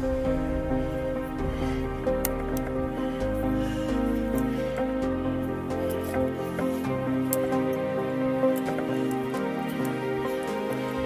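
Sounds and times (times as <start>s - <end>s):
sustained layered music tones: 0.0s - 11.0s.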